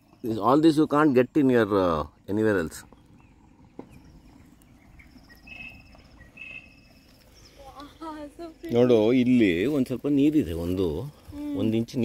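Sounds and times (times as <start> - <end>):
low wind rumble: 0.0 - 12.0.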